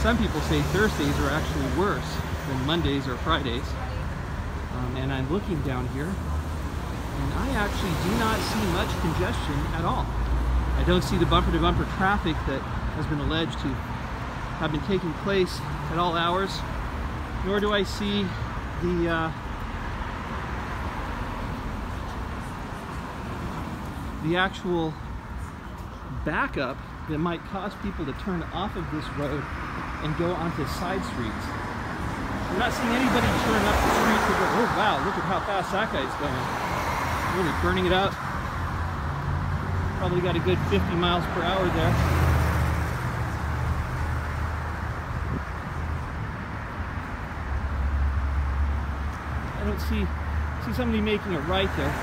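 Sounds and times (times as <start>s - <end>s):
cars passing: 0.0s - 52.0s
road traffic noise: 0.0s - 52.0s.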